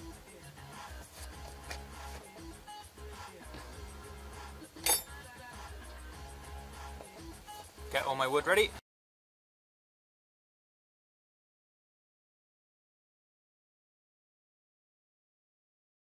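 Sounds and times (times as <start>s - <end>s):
faint background music: 0.0s - 8.8s
sharp metallic clink: 4.8s - 5.2s.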